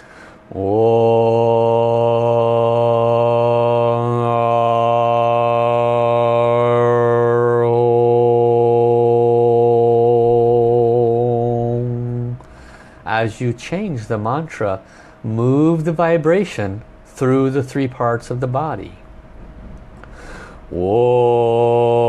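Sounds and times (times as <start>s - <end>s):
man chanting on low note: 0.5s - 19.0s, 20.7s - 22.0s.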